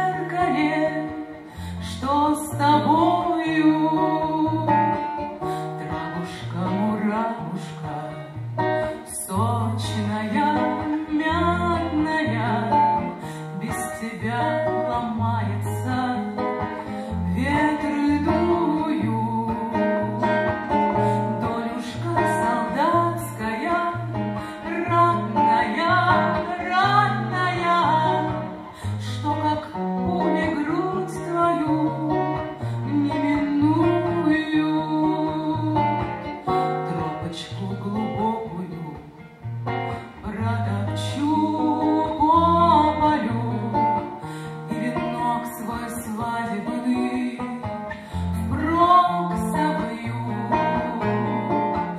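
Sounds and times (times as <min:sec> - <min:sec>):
acoustic guitar: 0:00.0 - 0:51.9
woman singing: 0:00.0 - 0:51.9.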